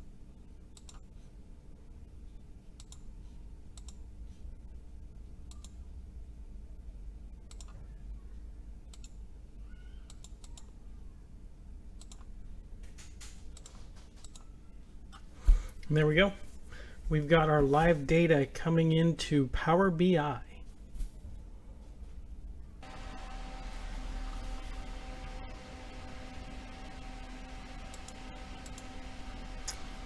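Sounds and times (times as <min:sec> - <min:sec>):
low steady hum: 0:00.0 - 0:30.0
computer mouse clicks: 0:00.7 - 0:01.1, 0:02.8 - 0:03.1, 0:03.7 - 0:04.0, 0:05.4 - 0:05.8, 0:07.5 - 0:07.8, 0:08.9 - 0:09.2, 0:10.0 - 0:10.8, 0:12.0 - 0:12.3, 0:12.9 - 0:14.5.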